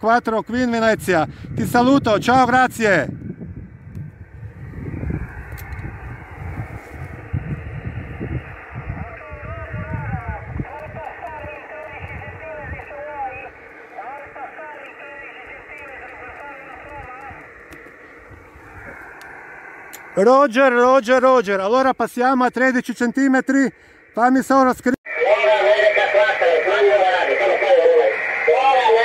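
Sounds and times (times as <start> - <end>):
low microphone rumble: 1.1 - 20.4
radio receiver hiss: 4.6 - 29.0
muffled radio voice: 8.9 - 17.5, 25.1 - 29.0.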